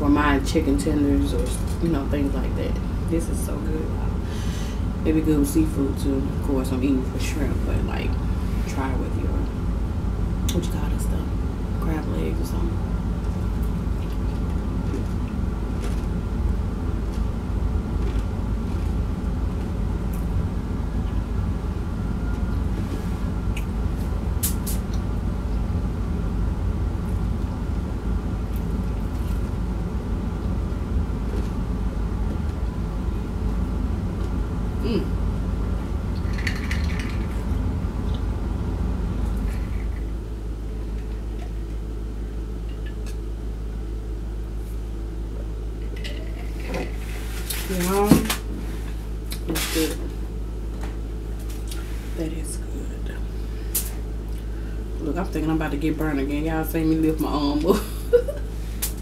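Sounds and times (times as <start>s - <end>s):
machine hum: 0.0s - 59.0s.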